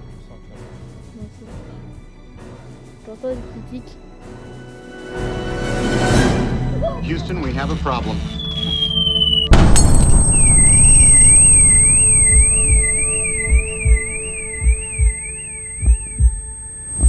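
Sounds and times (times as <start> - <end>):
falling whistle: 8.2 - 17.0
warbling electronic alarm: 8.3 - 17.0
steady high tone: 8.5 - 17.0
heartbeat-like low thumps: 9.5 - 17.0.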